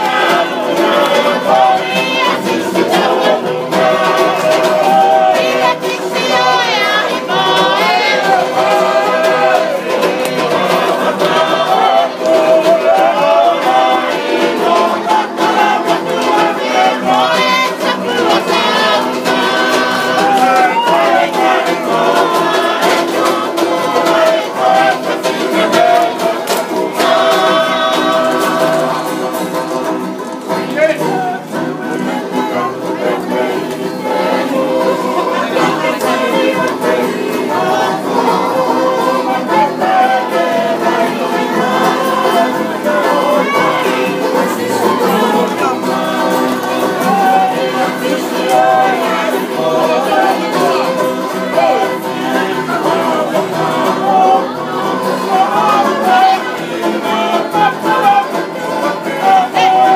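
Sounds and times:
banjo: 0.0 - 59.9
men and women singing: 0.0 - 59.9
strummed acoustic guitar: 0.0 - 59.9.

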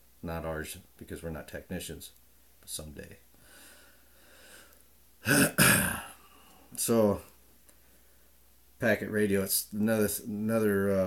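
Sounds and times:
person clearing throat: 5.2 - 6.2.

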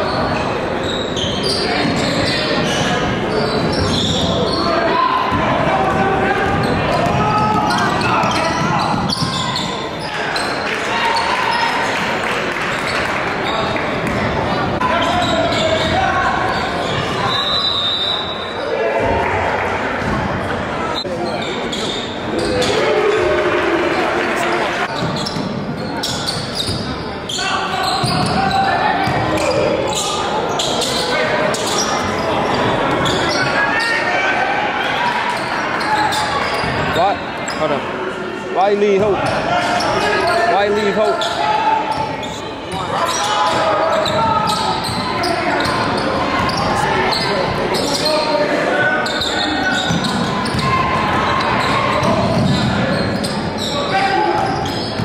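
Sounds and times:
echoing crowd voices: 0.0 - 55.0.

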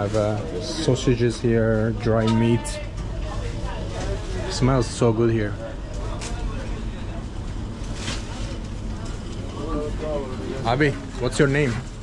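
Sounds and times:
busy shop background noise: 0.0 - 12.0.

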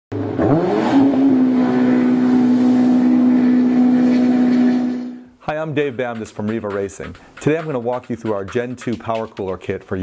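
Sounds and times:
engine revving: 0.1 - 5.2.

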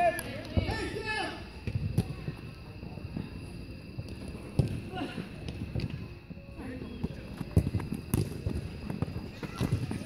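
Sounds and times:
dull thuds of feet and ball kicks: 7.0 - 10.0.

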